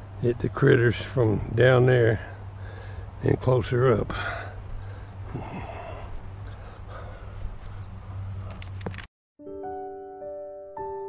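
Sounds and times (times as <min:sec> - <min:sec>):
steady low hum: 0:00.0 - 0:09.1
soft piano music: 0:09.4 - 0:11.0.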